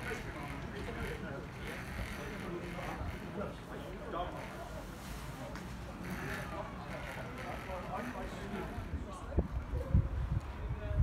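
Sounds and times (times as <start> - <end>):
wind rumble on microphone: 8.7 - 11.0.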